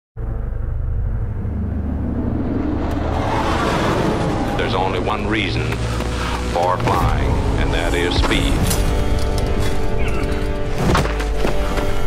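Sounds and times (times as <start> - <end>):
engine rumble: 0.2 - 10.7.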